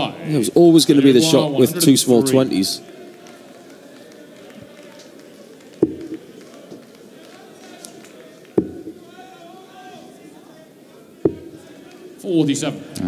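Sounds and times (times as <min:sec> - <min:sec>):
murmur of crowd: 0:00.0 - 0:13.0.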